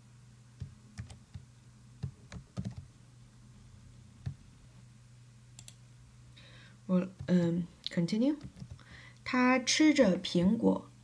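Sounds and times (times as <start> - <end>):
steady low hum: 0.0 - 11.0
faint computer clicks: 5.6 - 5.8
person speaking: 6.9 - 10.9.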